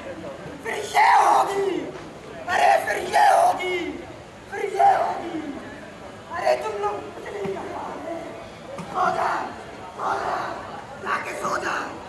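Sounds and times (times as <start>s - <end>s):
group shouting in unison: 0.7s - 1.9s, 2.5s - 5.6s, 8.9s - 10.6s.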